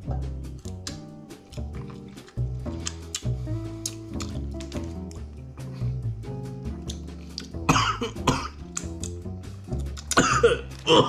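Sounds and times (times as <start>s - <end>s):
man coughing: 7.7s - 8.5s, 10.1s - 11.0s.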